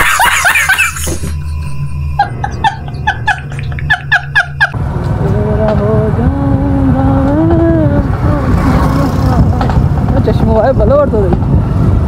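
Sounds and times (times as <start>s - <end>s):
wind buffeting microphone: 4.7s - 12.0s.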